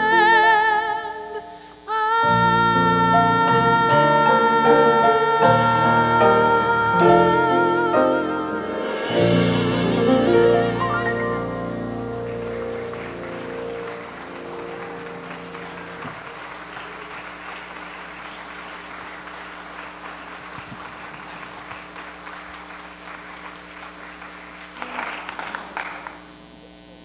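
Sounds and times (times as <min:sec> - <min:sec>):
piano chord ringing: 0:02.4 - 0:16.4
congregation applauding: 0:06.7 - 0:26.3.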